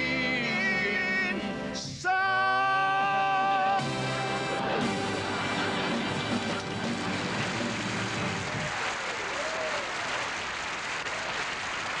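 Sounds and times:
music: 0:00.0 - 0:08.7
audience applauding: 0:04.8 - 0:12.0.

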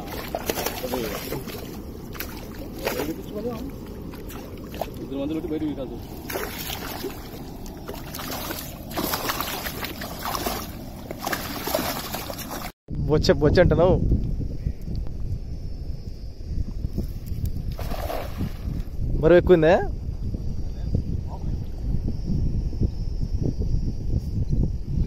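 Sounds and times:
fish thrashing in water: 0:00.0 - 0:05.1, 0:06.0 - 0:12.8
water splashing and sloshing: 0:00.0 - 0:12.8, 0:17.7 - 0:19.0.

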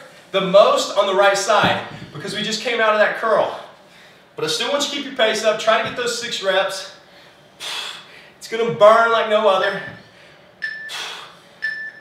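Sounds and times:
short electronic timer beeps: 0:10.6 - 0:11.0, 0:11.6 - 0:12.0.

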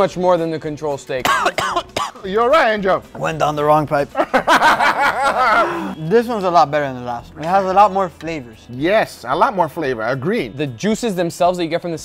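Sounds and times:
men laughing: 0:04.0 - 0:06.0.

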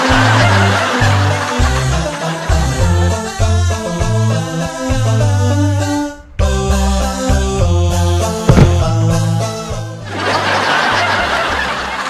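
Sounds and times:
canned laughter: 0:00.0 - 0:03.3, 0:10.1 - 0:12.0
background music with bass line: 0:00.0 - 0:10.2.

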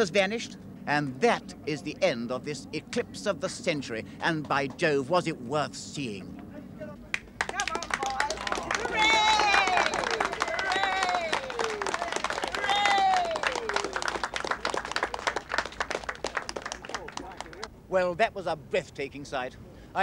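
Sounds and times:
crowd clapping: 0:07.1 - 0:17.7
voices cheering: 0:07.4 - 0:17.7.

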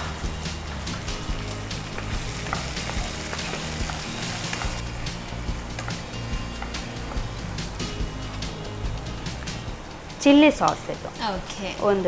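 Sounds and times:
vegetables sizzling in a pan: 0:00.0 - 0:12.0.

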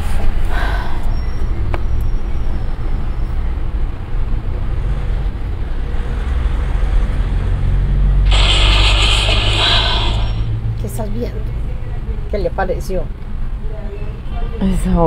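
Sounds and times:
steady low rumble: 0:08.3 - 0:10.9.

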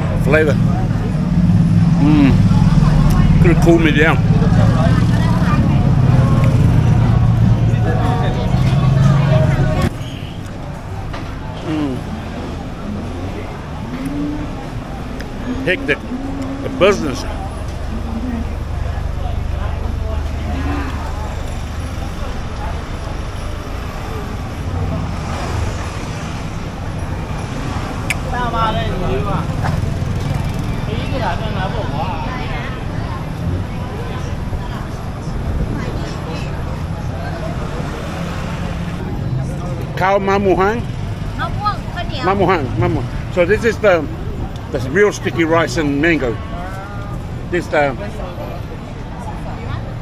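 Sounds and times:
engine humming: 0:00.0 - 0:50.0
low traffic rumble: 0:00.0 - 0:50.0
street crowd chatter: 0:00.0 - 0:50.0
nearer voice: 0:02.0 - 0:02.4, 0:11.6 - 0:12.2.

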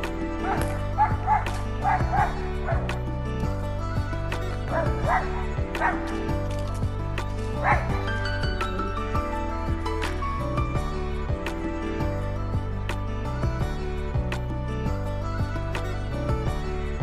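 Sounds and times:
background music sustained tones: 0:00.0 - 0:17.0
dog barking: 0:00.4 - 0:02.9, 0:04.7 - 0:06.1, 0:07.6 - 0:08.0.

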